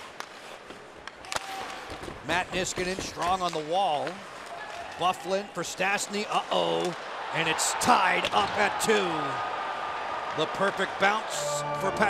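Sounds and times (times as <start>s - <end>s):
arena crowd noise: 4.1s - 12.0s.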